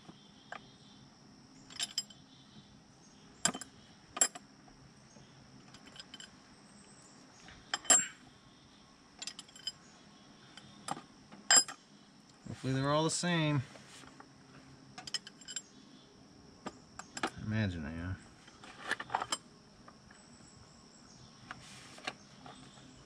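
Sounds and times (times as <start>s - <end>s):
metal parts clinking: 1.7s - 2.2s, 5.7s - 6.3s, 7.7s - 8.2s, 9.2s - 9.8s, 11.5s - 11.8s, 15.0s - 15.7s.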